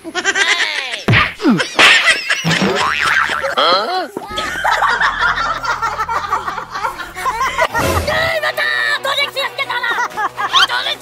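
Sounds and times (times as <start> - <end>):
dubbed laughter: 0.0 - 3.7, 4.3 - 8.4
cartoon boing effects: 2.5 - 3.7
low steady drone: 4.3 - 8.4.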